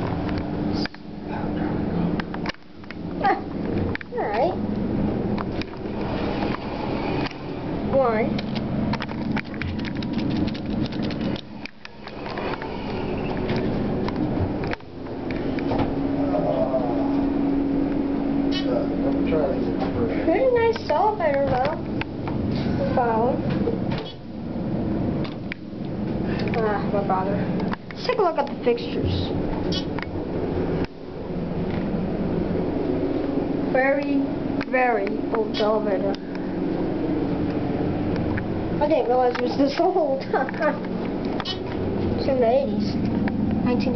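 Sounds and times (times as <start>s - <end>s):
low hum in elevator: 0.0s - 43.9s.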